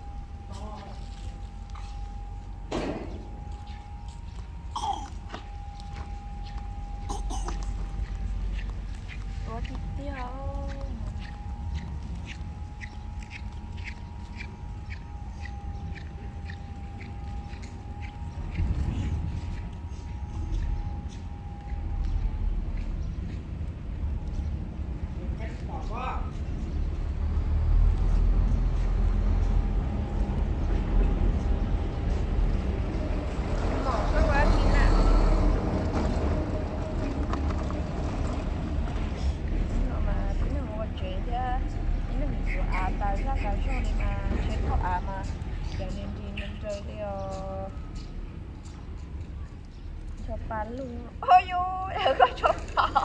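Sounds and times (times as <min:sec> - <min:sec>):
wind buffeting microphone: 0:05.5 - 0:53.0.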